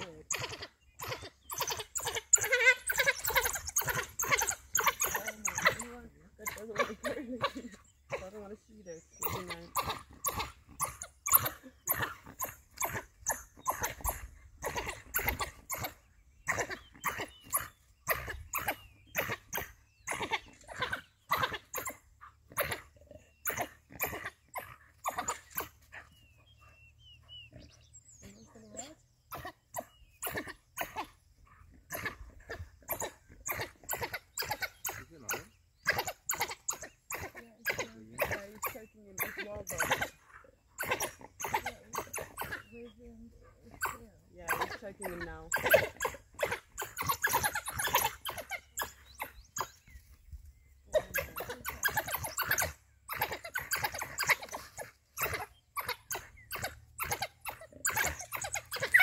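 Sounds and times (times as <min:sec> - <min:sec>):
wild dogs calling: 0:00.0 - 0:59.0.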